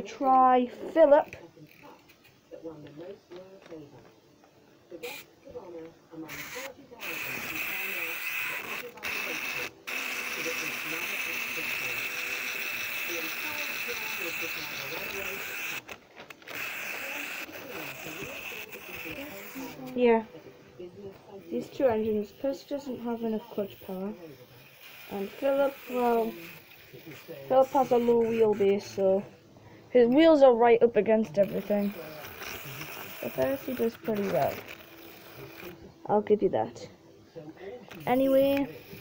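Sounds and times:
clockwork toy motor whirring: 0.8 - 2.3, 5.0 - 5.3, 6.2 - 20.2, 21.4 - 29.3, 31.1 - 35.8, 37.9 - 39.0.

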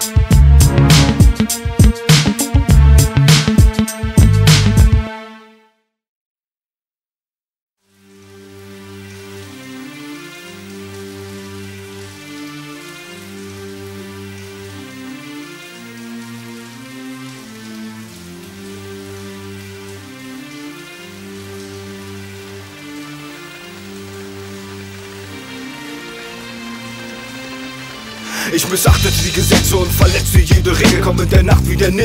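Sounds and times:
rain patter: 0.1 - 4.4, 7.9 - 32.0
slow sustained chords: 0.4 - 1.5, 20.3 - 28.3.

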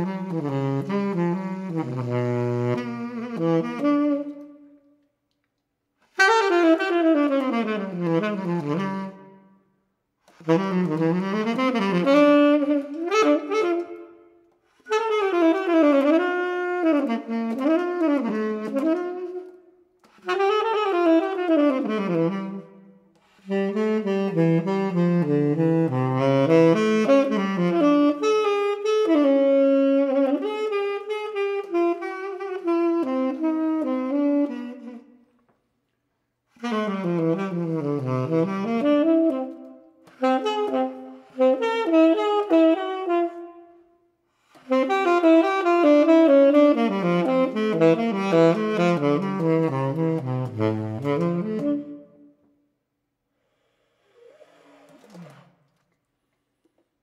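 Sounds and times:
tenor saxophone improvising: 0.0 - 5.2, 6.0 - 9.6, 10.2 - 35.6, 36.5 - 57.0.

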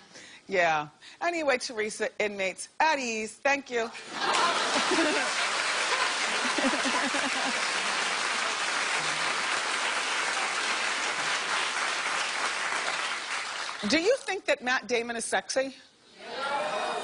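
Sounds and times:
audience applauding: 4.2 - 13.9.

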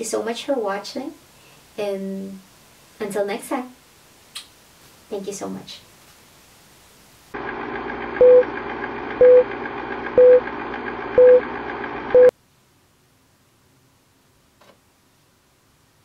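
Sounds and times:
short mid-pitched beeps: 10.2 - 10.4.

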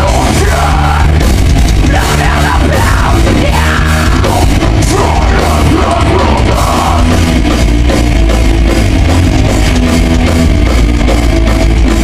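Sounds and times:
thrash metal band playing live: 0.0 - 12.0.

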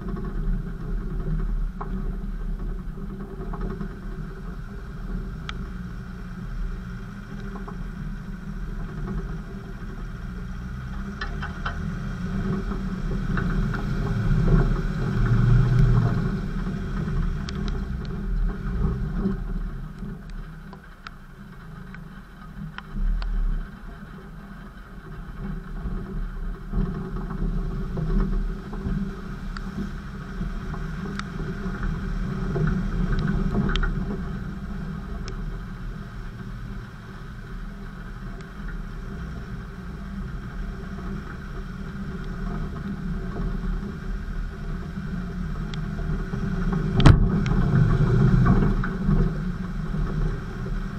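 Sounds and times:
off-road vehicle engine: 0.0 - 50.9.

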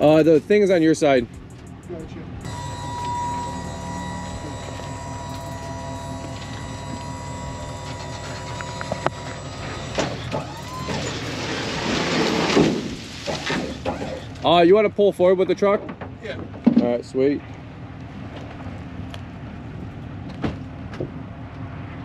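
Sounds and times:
hydraulic pump running: 2.4 - 11.5
grass clippings sliding out: 11.0 - 13.6.

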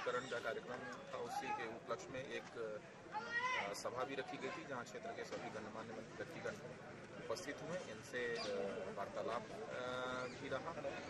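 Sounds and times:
man talking: 0.0 - 2.9, 3.6 - 11.0.

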